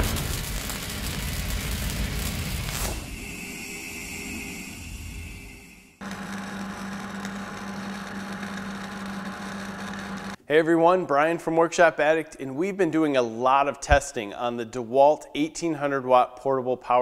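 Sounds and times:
welder crackling: 0:00.0 - 0:03.5, 0:06.0 - 0:10.4
rumble: 0:00.0 - 0:06.0.

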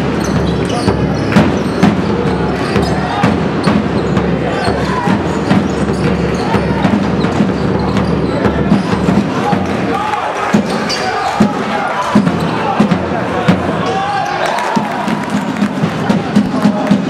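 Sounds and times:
basketball bouncing on court: 0:00.0 - 0:09.8
voices in a hall: 0:00.0 - 0:17.0.

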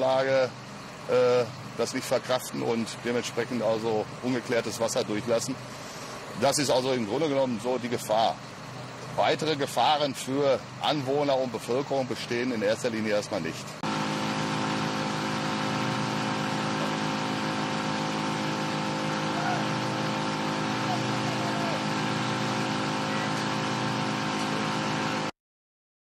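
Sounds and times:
engine idling: 0:00.0 - 0:25.3.

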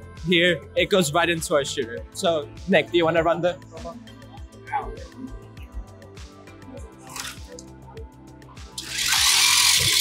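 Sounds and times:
background music: 0:00.0 - 0:10.0
robot intake hissing burst: 0:08.8 - 0:10.0.

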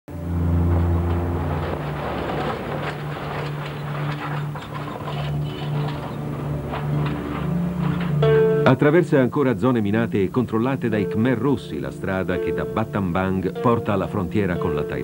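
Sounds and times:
low held music notes: 0:00.1 - 0:15.0
truck engine passing: 0:00.1 - 0:15.0.

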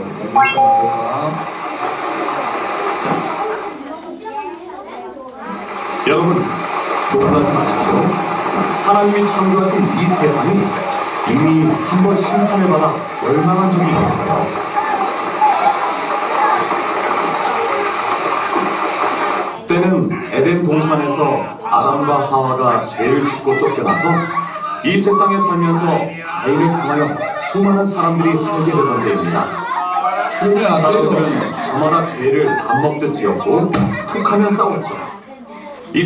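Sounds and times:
rain sound effect over loudspeakers: 0:01.3 - 0:03.7, 0:05.5 - 0:19.7.

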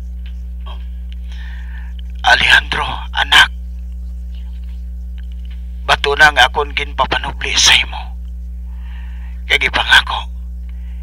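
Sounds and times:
steady low hum: 0:00.0 - 0:11.0
person speaking: 0:05.8 - 0:08.2.

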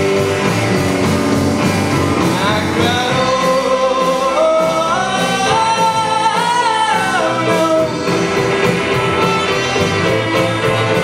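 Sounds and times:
live rock band playing: 0:00.0 - 0:11.0
slow held melody line: 0:00.0 - 0:11.0.

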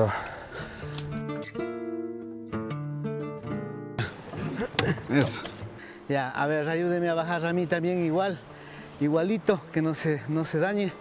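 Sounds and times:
acoustic guitar music: 0:00.6 - 0:11.0
outdoor background noise: 0:04.0 - 0:11.0.

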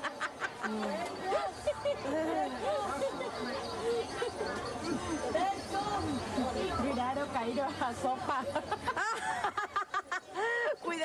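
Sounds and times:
voices talking and laughing: 0:00.0 - 0:11.0.

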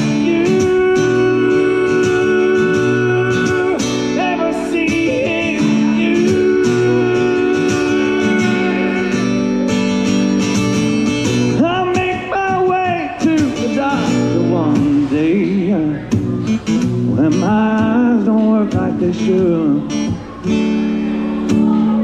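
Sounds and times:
acoustic guitar chords: 0:00.0 - 0:22.0.

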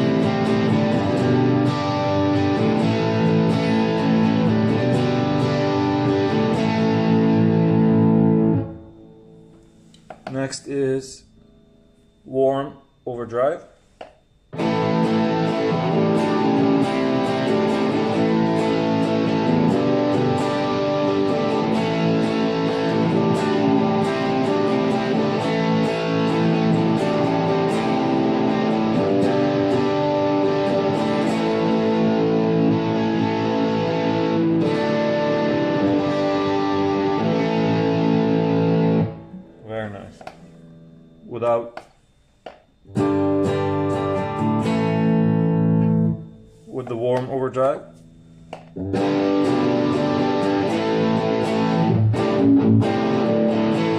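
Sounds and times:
overdriven electric guitar: 0:00.0 - 0:10.4, 0:14.5 - 0:41.2, 0:42.8 - 0:46.6, 0:47.9 - 0:53.9.

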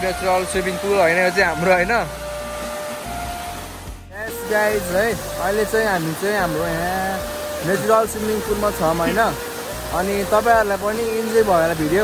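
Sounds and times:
water rushing over rocks: 0:00.0 - 0:12.0.

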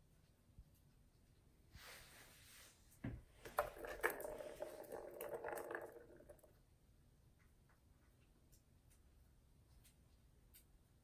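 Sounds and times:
ball rattling around plastic track: 0:03.4 - 0:06.6
toy ball thud: 0:03.4 - 0:06.6.

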